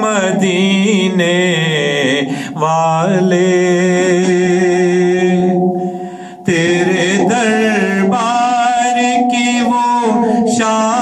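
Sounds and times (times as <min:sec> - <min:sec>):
man singing: 0:00.0 - 0:11.0.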